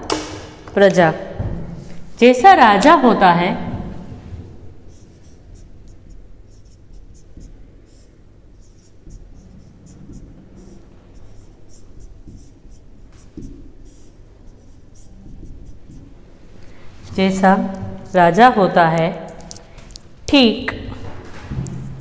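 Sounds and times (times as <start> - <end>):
marker squeaking on whiteboard: 4.8 - 16.3, 17.1 - 18.4.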